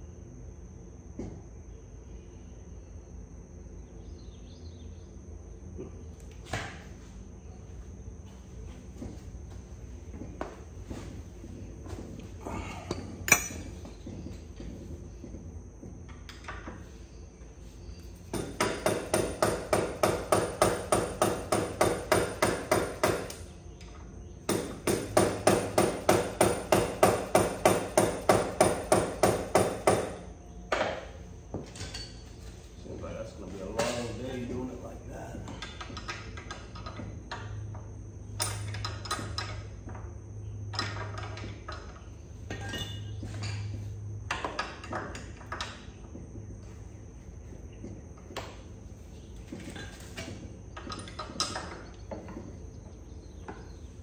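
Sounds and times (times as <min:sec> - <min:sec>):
tools clinking on metal: 0:12.9 - 0:13.8, 0:40.8 - 0:43.8
hammer tapping metal: 0:13.3 - 0:13.7.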